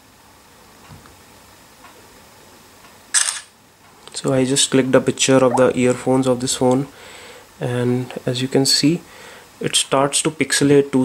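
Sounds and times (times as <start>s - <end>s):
low room noise: 0.0s - 11.0s
camera shutter click: 3.1s - 3.5s.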